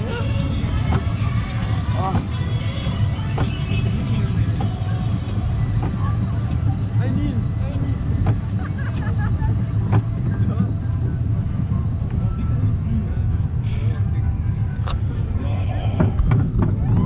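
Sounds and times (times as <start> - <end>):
music: 0.0 - 8.3, 9.6 - 17.0
roller coaster rumbling on track: 0.0 - 17.0.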